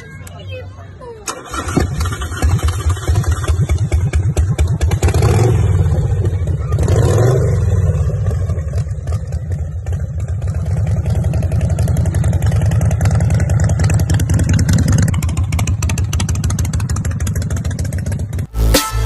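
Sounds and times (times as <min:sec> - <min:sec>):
motorcycle engine running: 0:01.5 - 0:18.9.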